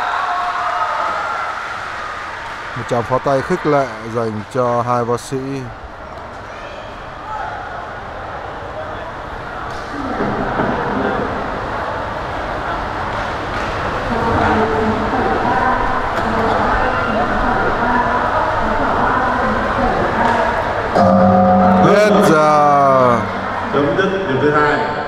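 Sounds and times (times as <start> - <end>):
crowd shouting and cheering: 0.0 - 4.4, 21.0 - 24.0
loud steady pitched tone: 20.9 - 24.3.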